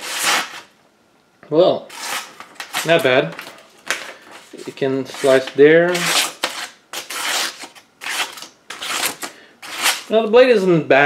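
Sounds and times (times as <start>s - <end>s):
knife slicing paper: 0.0s - 0.7s, 1.9s - 3.0s, 4.5s - 10.1s.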